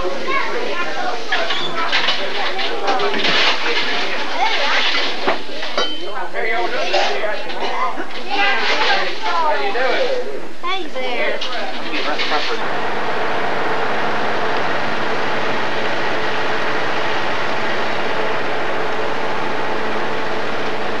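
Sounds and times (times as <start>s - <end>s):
voices chattering: 0.0s - 21.0s
bus diesel engine: 11.8s - 21.0s.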